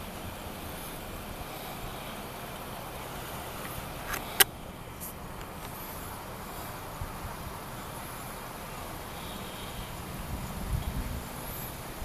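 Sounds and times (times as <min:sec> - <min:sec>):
vehicles idling: 0:00.0 - 0:12.0
sharp click: 0:04.1 - 0:04.5.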